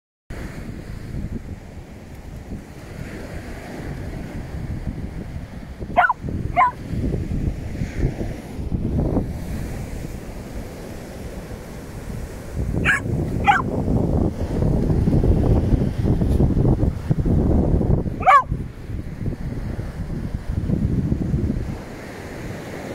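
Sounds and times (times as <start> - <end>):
surf rushing: 0.4 - 22.9
dog barking: 6.0 - 6.8, 12.8 - 13.7, 18.2 - 18.6.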